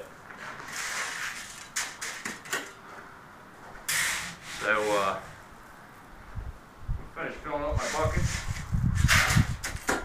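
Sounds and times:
shovel scraping coal: 0.3 - 2.8, 3.9 - 5.2, 7.8 - 10.0.

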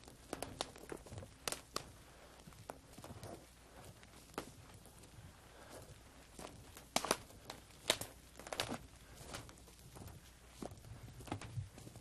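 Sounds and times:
slow footsteps walking: 0.0 - 12.0.

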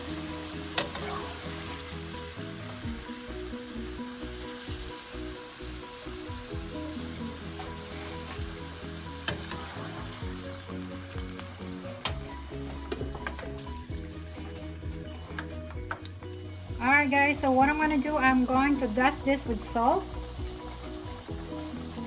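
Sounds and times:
background music: 0.0 - 22.0
fries sizzling in hot oil: 0.0 - 22.0.

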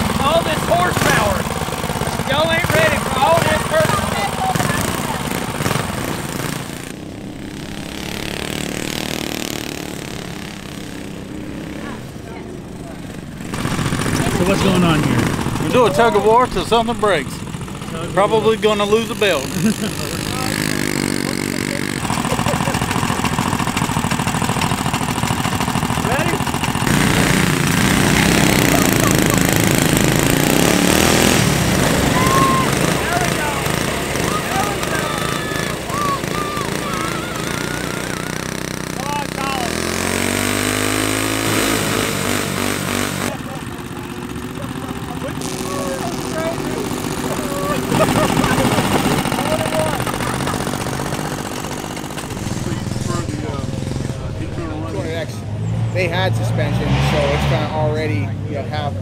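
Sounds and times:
tires spinning in sand: 0.0 - 58.8
go-kart engines running hard: 0.0 - 59.0
people shouting: 28.3 - 30.0, 31.2 - 39.8, 45.8 - 50.6.

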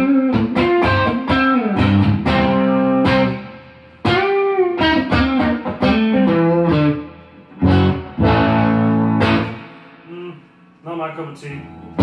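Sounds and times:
electric guitar chord ringing: 11.6 - 12.0.

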